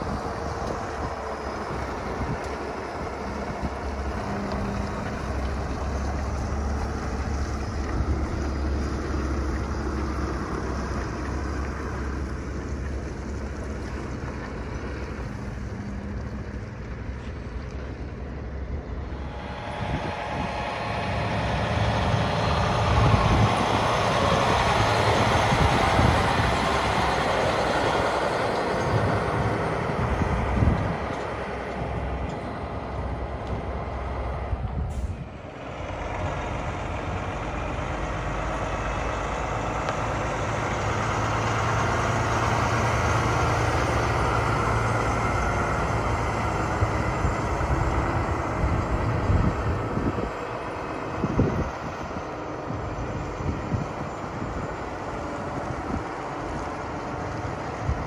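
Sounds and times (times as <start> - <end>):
diesel truck engine running: 0.0 - 58.0.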